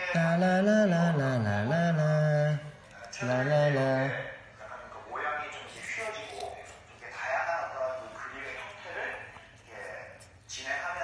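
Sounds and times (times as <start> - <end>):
man singing held note: 0.0 - 4.4.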